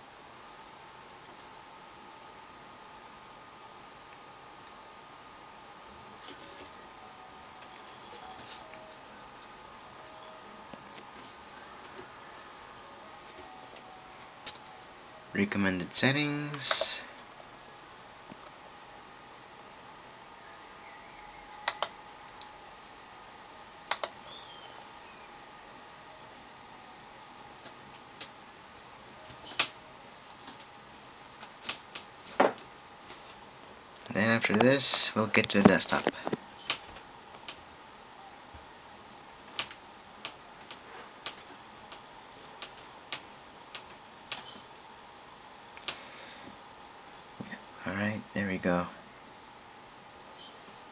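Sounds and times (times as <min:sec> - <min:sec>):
faint steady hiss: 0:00.0 - 0:50.9
faint steady hum: 0:00.0 - 0:50.9.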